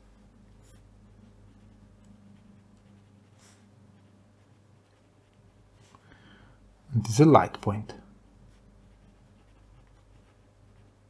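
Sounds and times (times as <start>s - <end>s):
low steady hum: 0.0s - 11.0s
pen scratching on paper: 0.6s - 5.9s, 8.5s - 11.0s.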